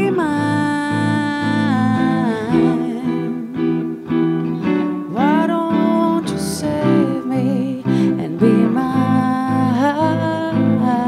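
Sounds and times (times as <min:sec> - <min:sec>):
woman singing: 0:00.0 - 0:04.0, 0:04.6 - 0:11.0
picked archtop guitar: 0:00.0 - 0:11.0.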